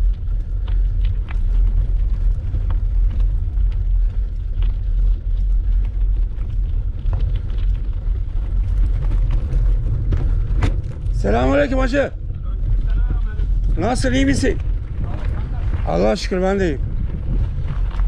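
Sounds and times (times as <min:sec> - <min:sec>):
gravel ticking under tyres: 0:00.0 - 0:18.0
wind buffeting microphone: 0:00.0 - 0:18.0.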